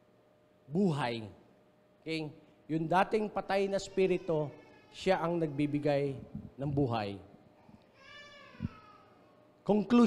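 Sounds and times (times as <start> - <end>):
faint high-pitched cry: 3.7 - 6.8, 7.6 - 9.6.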